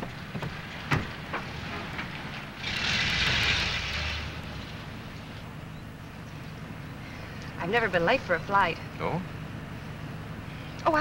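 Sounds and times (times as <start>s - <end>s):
car pulling away: 0.0s - 6.9s
low engine rumble: 0.0s - 11.0s.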